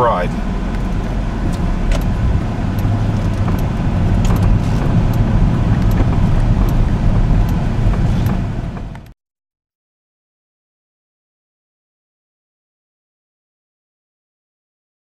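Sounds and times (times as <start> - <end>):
car engine running inside cabin: 0.0 - 9.1.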